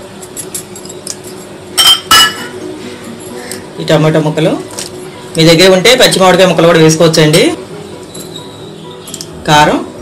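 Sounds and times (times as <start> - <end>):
glass bowl clinking on metal bowl: 0.4 - 2.6.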